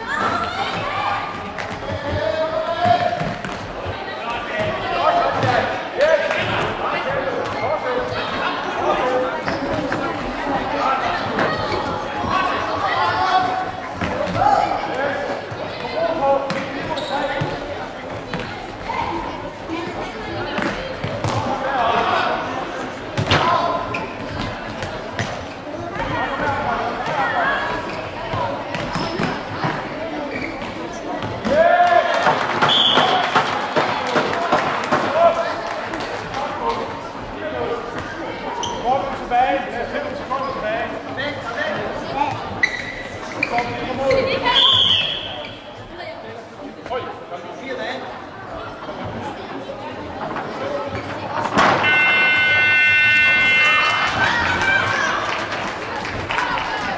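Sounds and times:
people shouting in a hall: 51.8s - 56.9s.

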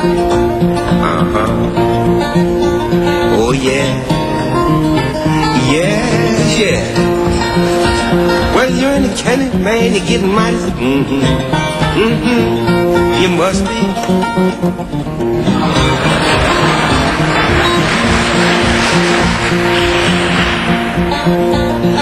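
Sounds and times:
fingerpicked acoustic guitar: 0.0s - 19.6s
audience applause: 15.4s - 21.0s.

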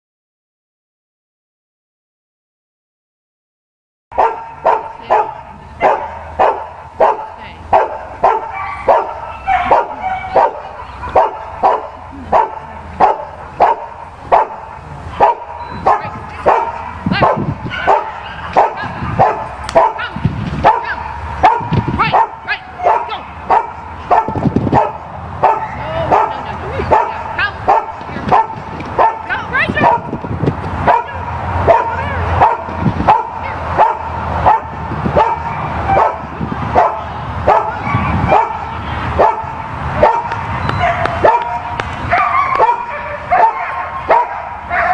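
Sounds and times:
dog barking: 4.1s - 30.2s, 30.8s - 44.9s.

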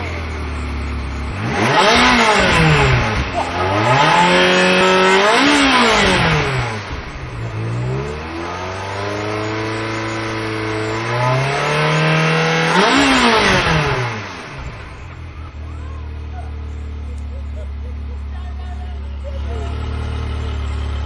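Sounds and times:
car engine revving: 0.0s - 21.0s.

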